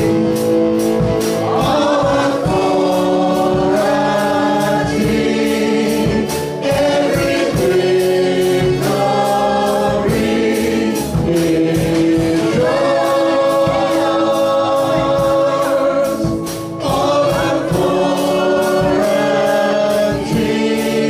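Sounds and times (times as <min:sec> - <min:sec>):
band with electric guitar: 0:00.0 - 0:21.0
voices singing held notes: 0:00.0 - 0:21.0.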